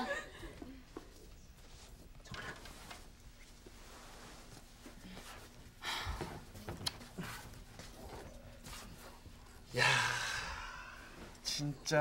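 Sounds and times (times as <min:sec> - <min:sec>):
person sighing: 0:09.7 - 0:11.2.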